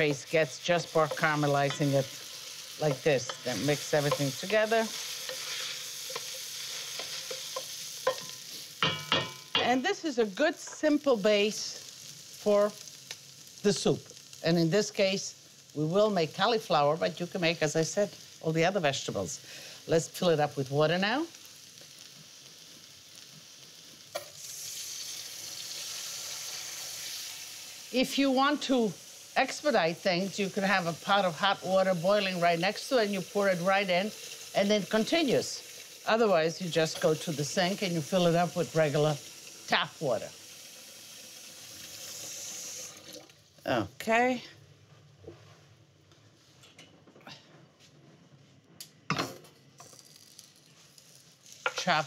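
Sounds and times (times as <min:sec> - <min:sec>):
tap water running into a pot: 0:36.8 - 0:43.4.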